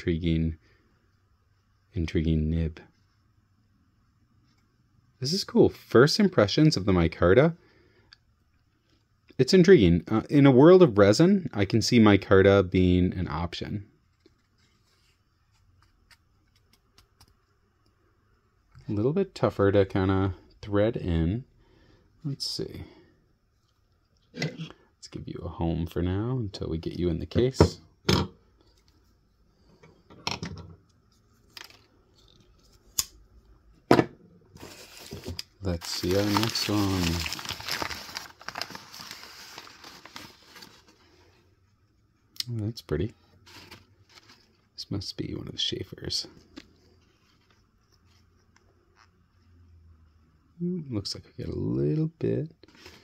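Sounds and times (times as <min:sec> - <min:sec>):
packing paper crinkling: 0:34.6 - 0:41.4, 0:43.4 - 0:44.6.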